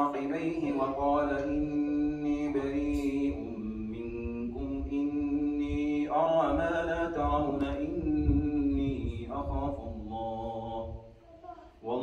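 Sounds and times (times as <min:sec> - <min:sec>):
man chanting melodic recitation: 0:00.0 - 0:11.2, 0:11.8 - 0:12.0.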